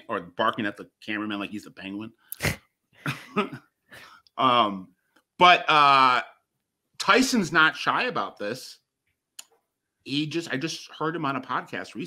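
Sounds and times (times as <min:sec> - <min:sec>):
man laughing: 0:02.4 - 0:03.7.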